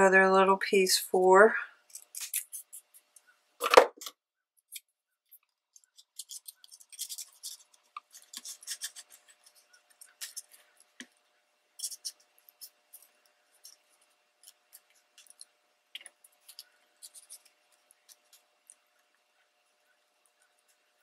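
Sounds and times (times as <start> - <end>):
scissors cutting paper: 1.9 - 3.0, 5.8 - 11.1, 11.8 - 15.4, 16.0 - 18.5.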